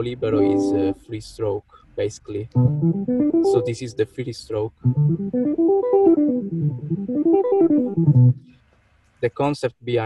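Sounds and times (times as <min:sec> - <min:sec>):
fingerstyle electric guitar arpeggio: 0:00.3 - 0:01.0, 0:02.6 - 0:04.0, 0:04.8 - 0:08.5.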